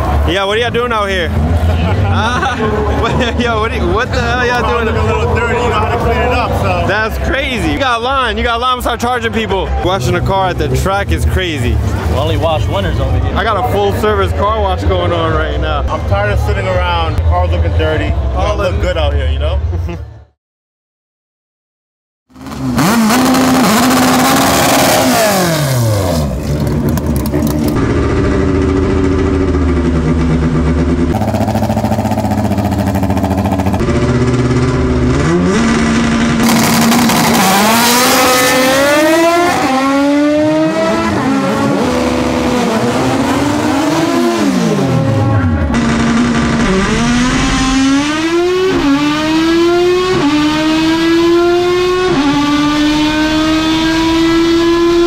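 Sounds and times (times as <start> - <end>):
car engine revving through gears: 22.4 - 30.2, 31.0 - 55.0.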